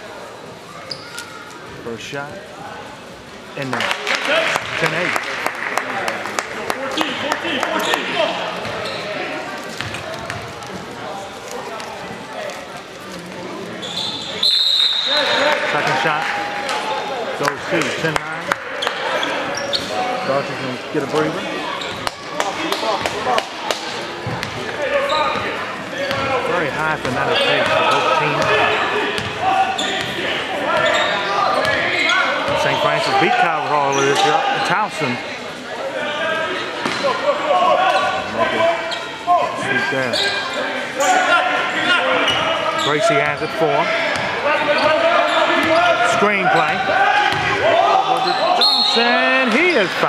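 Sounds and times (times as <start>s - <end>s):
background murmur: 0.0s - 50.0s
crowd voices: 0.0s - 50.0s
basketball bouncing on gym floor: 24.2s - 24.6s, 47.3s - 47.6s.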